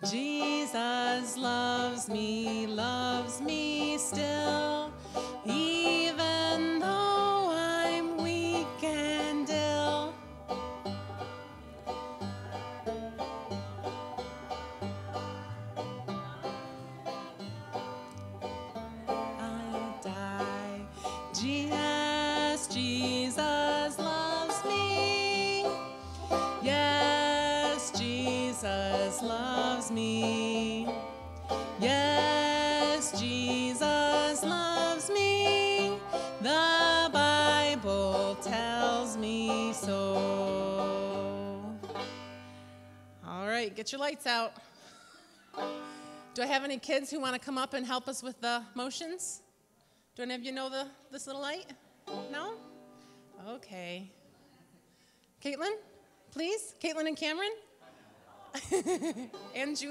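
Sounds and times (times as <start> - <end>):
woman singing a hymn: 0.0 - 10.2, 18.8 - 31.0, 31.7 - 41.9
banjo picking: 0.0 - 43.6, 44.9 - 47.6, 51.3 - 53.2, 58.7 - 59.9.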